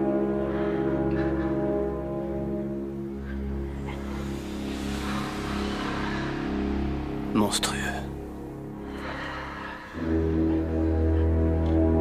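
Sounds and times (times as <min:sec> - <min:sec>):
low drone of held tones: 0:00.0 - 0:12.0
hissing swell: 0:02.8 - 0:11.3.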